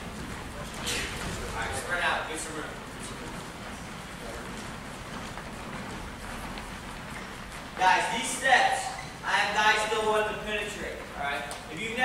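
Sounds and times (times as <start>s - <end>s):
gym hubbub: 0.0s - 12.0s.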